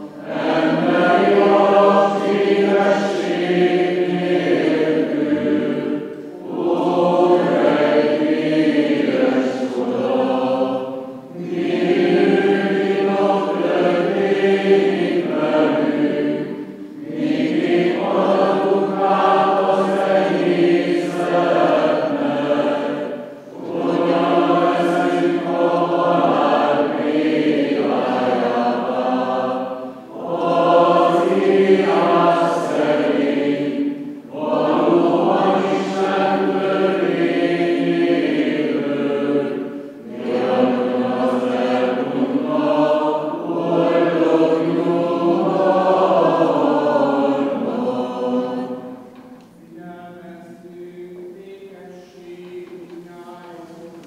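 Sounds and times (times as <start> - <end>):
group chanting a cappella: 0.0 - 54.0.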